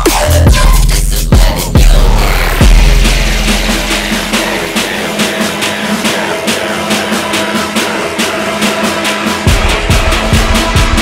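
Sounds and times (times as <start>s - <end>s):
heavy sub-bass: 0.0s - 7.9s, 9.4s - 11.0s
sharp percussion hits: 0.0s - 11.0s.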